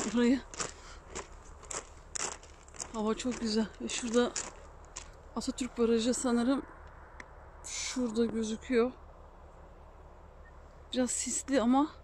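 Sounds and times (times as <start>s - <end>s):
footsteps on gravel: 0.0s - 5.9s.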